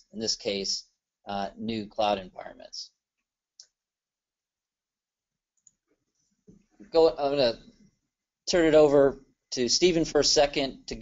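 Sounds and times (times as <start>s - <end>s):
person speaking: 0.0s - 3.0s, 6.8s - 7.8s, 8.5s - 11.0s.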